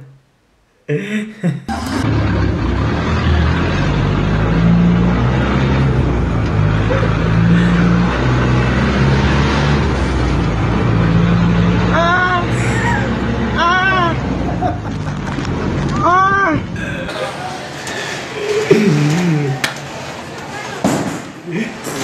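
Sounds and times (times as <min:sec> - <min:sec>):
bus engine and road noise: 0:01.7 - 0:22.0
person calling out: 0:12.0 - 0:14.2.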